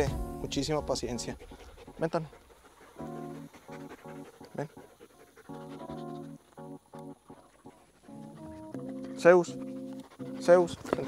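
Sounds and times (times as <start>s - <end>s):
background music: 0.0s - 11.0s
dog panting: 0.6s - 11.0s.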